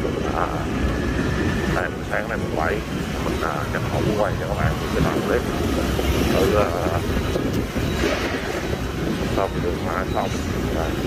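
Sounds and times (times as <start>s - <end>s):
vehicle traffic rumble: 0.0s - 11.0s
wind buffeting microphone: 0.0s - 11.0s.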